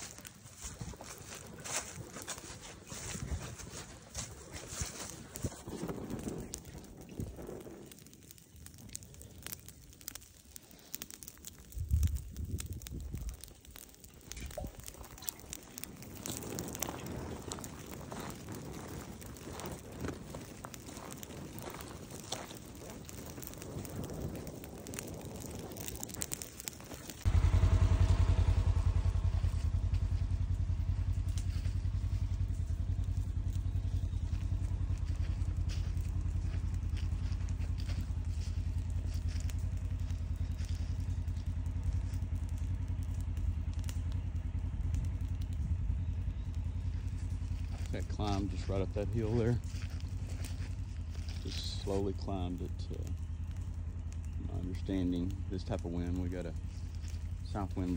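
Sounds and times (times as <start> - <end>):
dry leaves crackling in flame: 0.0 - 57.9
loud steady low rumble: 0.0 - 57.9.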